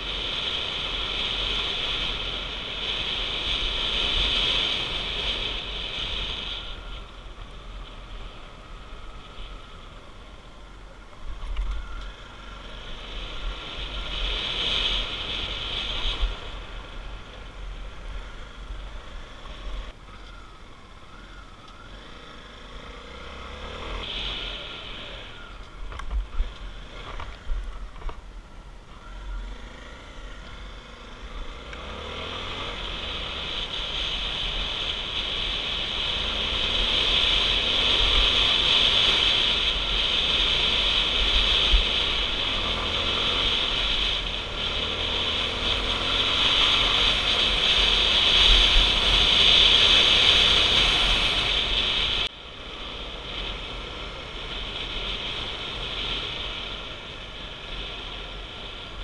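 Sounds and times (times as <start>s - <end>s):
motorcycle engine running: 0.0s - 59.0s
wind over microphone: 23.8s - 28.4s.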